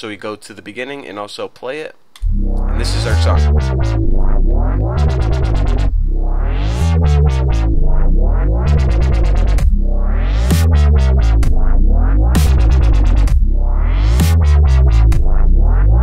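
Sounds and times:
wobble bass synth: 2.2s - 16.0s
kick drum: 3.6s - 6.3s, 7.2s - 16.0s.

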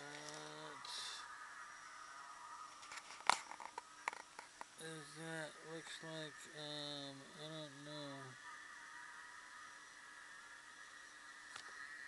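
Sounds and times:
faint click: 11.5s - 11.8s.

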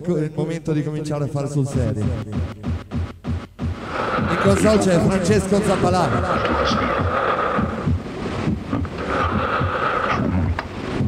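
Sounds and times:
electronic dance music: 1.5s - 11.0s
hissing noise wash: 1.7s - 11.0s
steady kick drum: 1.7s - 11.0s.

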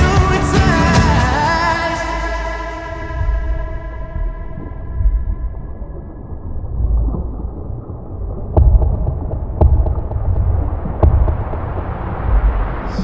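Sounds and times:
deep low rumble: 0.0s - 13.0s
heavy booming thuds: 8.5s - 13.0s.

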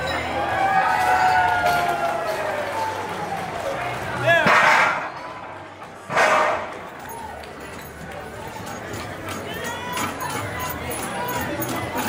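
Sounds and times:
voices in indoor hall: 0.0s - 12.0s.

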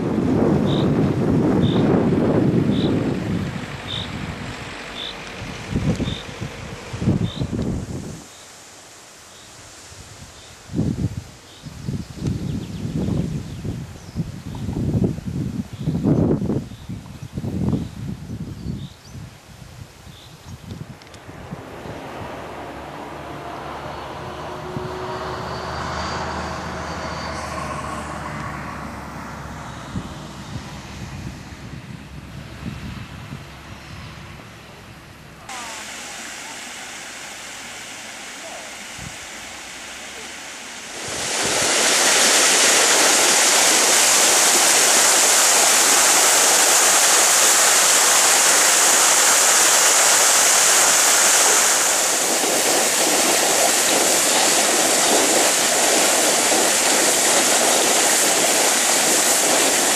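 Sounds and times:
water rushing over weir: 0.0s - 11.5s, 35.4s - 59.9s
faint voices: 34.8s - 37.0s.

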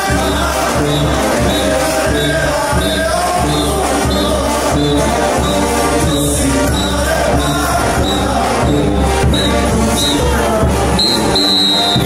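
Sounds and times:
bass drums: 0.0s - 12.0s
brass band playing: 0.0s - 12.0s.

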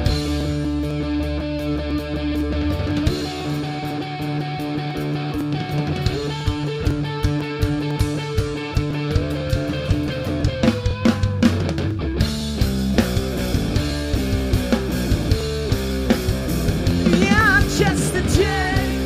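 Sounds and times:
bass guitar: 0.0s - 19.0s
electric guitar sustained notes: 0.0s - 19.0s
rock band playing: 0.0s - 19.0s
drum kit steady beat: 2.4s - 19.0s.

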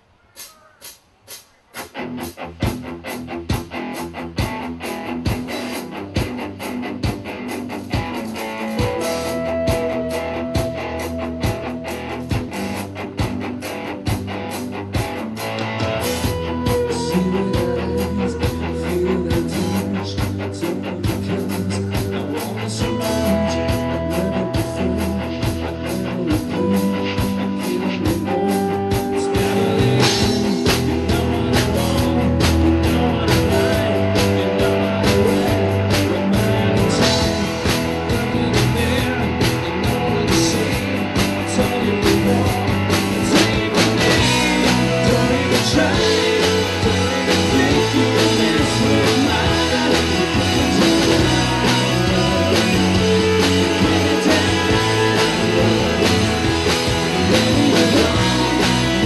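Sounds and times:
live rock band playing: 0.4s - 59.0s
electric guitar lead notes: 1.9s - 59.0s.

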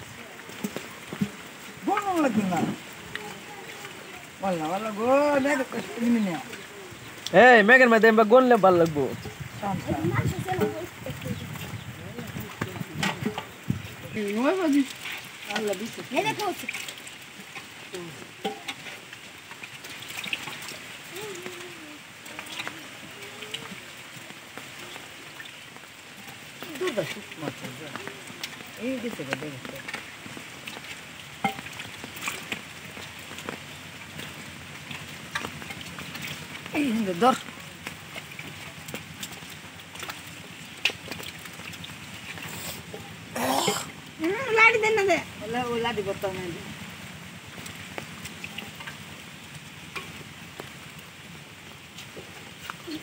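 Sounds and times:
rain pattering: 0.0s - 53.0s
small taps and splashes: 0.0s - 53.0s.

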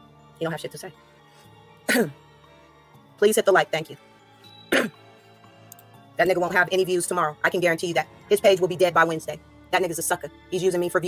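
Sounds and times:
faint background music: 0.0s - 11.0s
woman clearing her throat: 1.9s - 2.2s, 4.7s - 5.0s.

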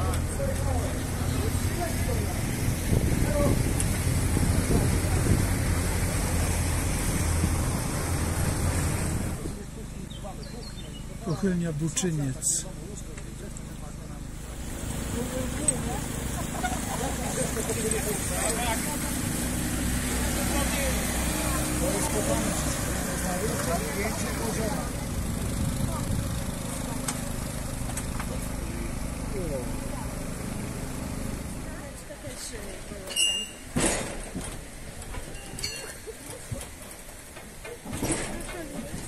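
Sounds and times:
boat engine humming: 0.0s - 33.7s
background chatter: 0.0s - 33.8s, 34.5s - 39.0s.

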